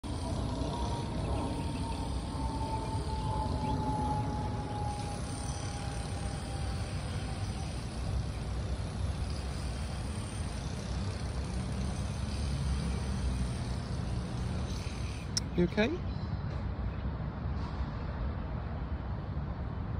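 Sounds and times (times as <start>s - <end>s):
distant road traffic rumble: 0.0s - 19.9s.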